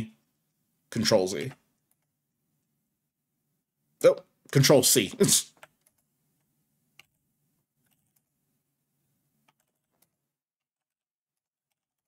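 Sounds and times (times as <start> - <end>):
faint computer keystrokes: 1.7 - 2.1, 5.6 - 7.2, 7.8 - 8.3, 9.4 - 10.2.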